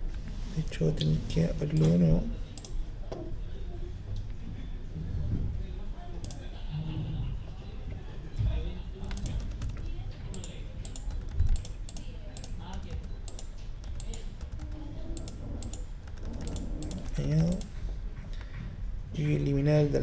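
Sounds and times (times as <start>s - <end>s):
computer keyboard typing: 1.7s - 2.8s, 9.0s - 17.8s.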